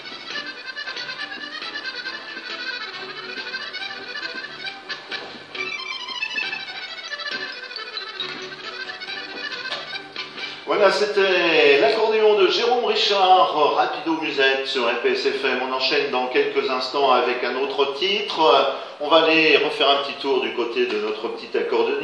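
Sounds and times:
bass accompaniment: 0.0s - 12.6s
accordion playing a dance tune: 0.0s - 13.2s.

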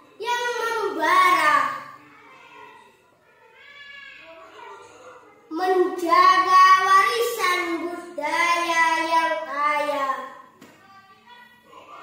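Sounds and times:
boy reciting sing-song: 5.5s - 10.4s.

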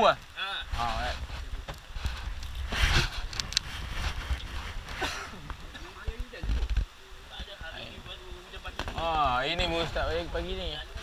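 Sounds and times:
rustling noise: 0.6s - 10.5s.

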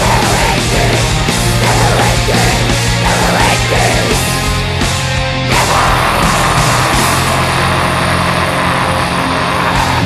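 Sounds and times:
death metal band playing: 0.0s - 10.0s.

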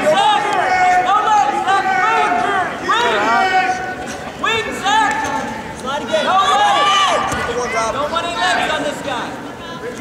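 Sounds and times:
people shouting: 0.0s - 4.0s, 6.2s - 7.4s
crowd noise: 0.0s - 10.0s.

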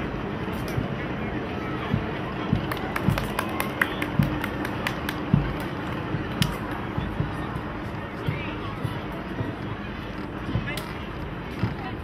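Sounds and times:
drum beating steadily: 0.0s - 12.0s
murmur of voices: 0.0s - 12.0s.

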